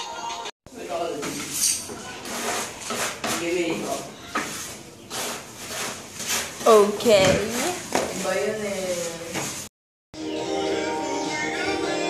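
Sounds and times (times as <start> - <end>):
rustling: 1.3 - 9.7.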